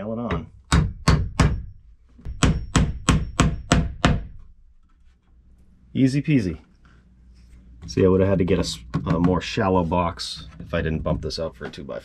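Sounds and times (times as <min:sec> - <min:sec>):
hammer driving nail into wood: 0:00.7 - 0:01.7, 0:02.3 - 0:04.5.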